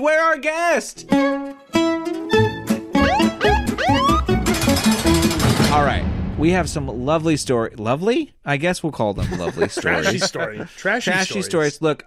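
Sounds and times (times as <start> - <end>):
harsh rapid rattling buzz: 4.3 - 5.8.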